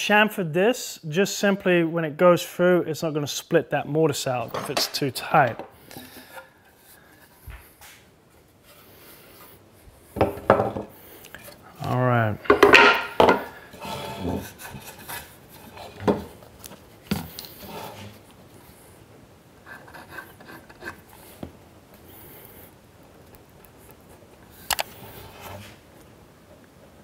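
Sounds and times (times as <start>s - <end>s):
sharp wooden knocks: 12.4s - 13.5s
wooden parts knocking and rubbing: 12.4s - 16.4s.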